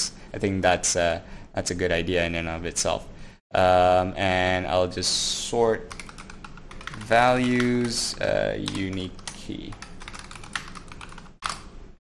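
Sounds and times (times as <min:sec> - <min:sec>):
typing on a computer keyboard: 0:05.9 - 0:08.0, 0:08.6 - 0:11.7.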